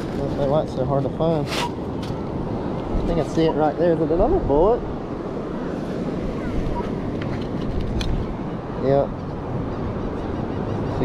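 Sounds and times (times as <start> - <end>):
low rumble of surf: 0.0 - 11.0
wind buffeting microphone: 0.0 - 11.0.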